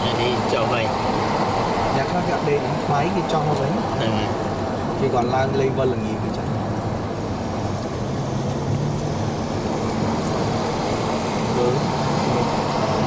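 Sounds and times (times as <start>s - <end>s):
car engine hum: 0.0s - 13.0s
tyre and road noise: 0.0s - 13.0s.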